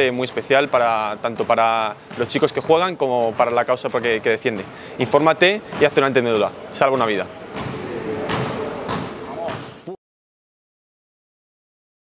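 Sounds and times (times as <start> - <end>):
basketball bouncing on wooden court: 0.0 - 9.8.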